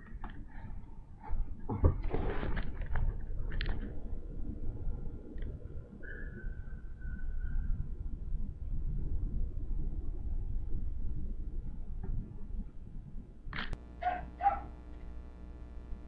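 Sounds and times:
low background rumble: 0:02.6 - 0:16.0
short animal calls: 0:13.9 - 0:15.0.

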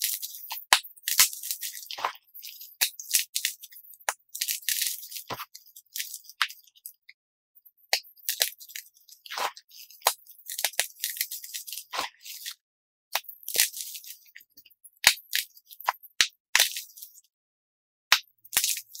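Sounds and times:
chalk crunching between fingers: 0:00.0 - 0:07.0, 0:07.9 - 0:12.6, 0:13.5 - 0:16.0.

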